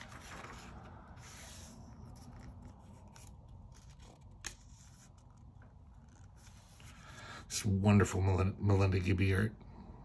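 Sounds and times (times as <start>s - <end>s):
rustling of paper pages: 0.0s - 7.1s.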